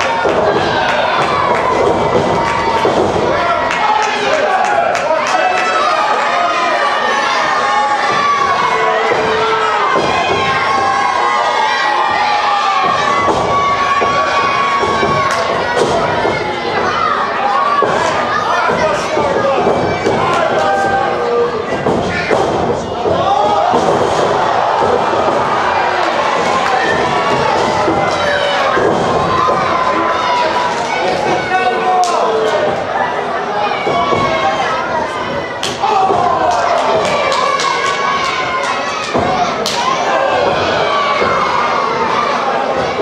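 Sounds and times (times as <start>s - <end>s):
children shouting and cheering: 0.0s - 43.0s
crowd voices: 0.0s - 43.0s.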